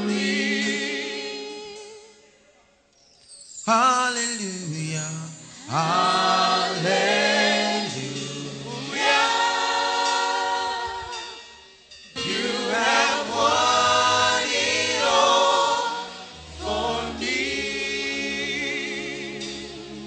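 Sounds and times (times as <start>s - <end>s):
choir singing gospel song: 0.0s - 2.2s, 5.6s - 20.0s.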